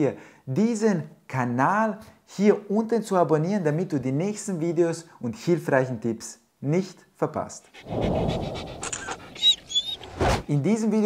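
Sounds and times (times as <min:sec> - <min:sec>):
dog panting: 0:07.6 - 0:10.1
short high chirps: 0:08.8 - 0:10.1.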